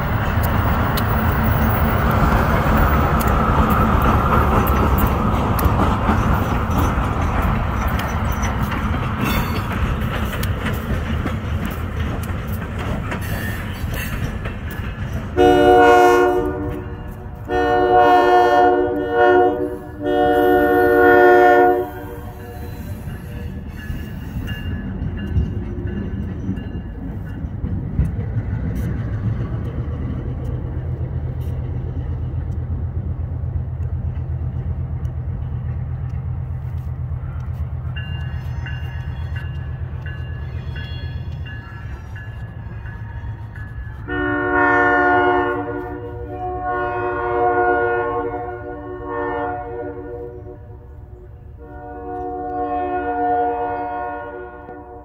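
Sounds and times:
locomotive engine droning: 0.0 - 55.0
locomotive horn: 15.4 - 22.8, 44.0 - 55.0.

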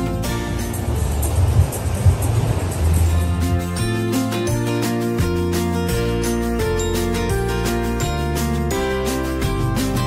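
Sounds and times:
low rumbling wind gusts: 0.0 - 4.4
wind and surf rushing hiss: 0.0 - 5.2.

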